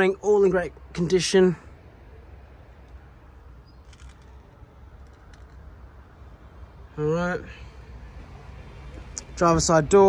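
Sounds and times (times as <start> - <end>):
phone handling clicks and rustles: 3.8 - 5.8.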